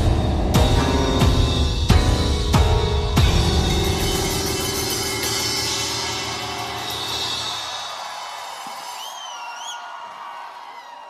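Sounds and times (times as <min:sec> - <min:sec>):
rock band music: 0:00.0 - 0:08.3
cymbals ringing: 0:03.2 - 0:09.4
wavering whistle from audience: 0:07.2 - 0:10.9.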